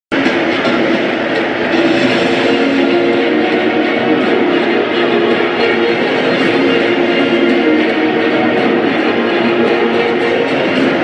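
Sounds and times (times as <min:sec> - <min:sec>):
loud music over public-address: 0:00.1 - 0:11.0.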